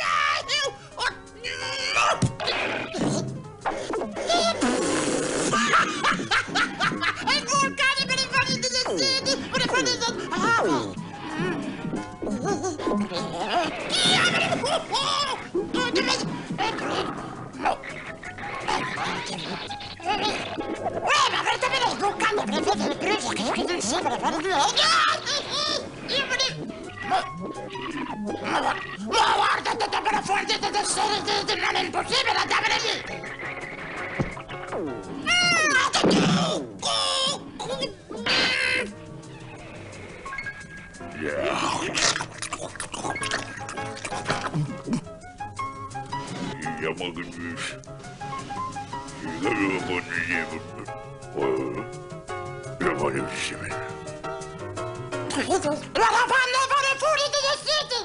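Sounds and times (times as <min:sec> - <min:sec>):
background music: 0:00.0 - 0:58.0
cartoon gibberish voice chattering: 0:01.0 - 0:34.0, 0:34.6 - 0:39.6, 0:41.1 - 0:45.1, 0:46.3 - 0:47.8, 0:49.2 - 0:52.0
cartoon voice cat-like cries: 0:12.9 - 0:17.0, 0:18.6 - 0:27.3, 0:35.2 - 0:38.9.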